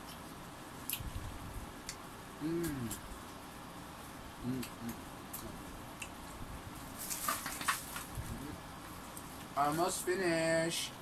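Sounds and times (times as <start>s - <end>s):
plastic bag crinkling: 6.9s - 8.2s.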